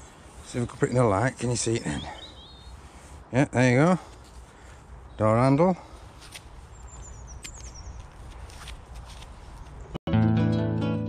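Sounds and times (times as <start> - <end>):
bird chirping: 0.0 - 3.0, 6.6 - 8.3
handling rustles: 6.0 - 9.9.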